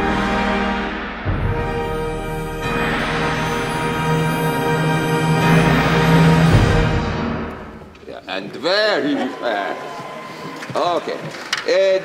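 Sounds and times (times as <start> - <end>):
orchestra playing loud passage: 0.0 - 7.8
man speaking: 8.0 - 9.9, 10.7 - 12.0.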